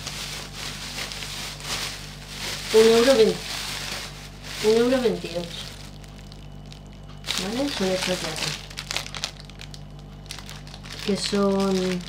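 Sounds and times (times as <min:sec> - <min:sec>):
plastic packaging crinkling: 0:00.0 - 0:12.0
steady low hum: 0:00.0 - 0:12.0.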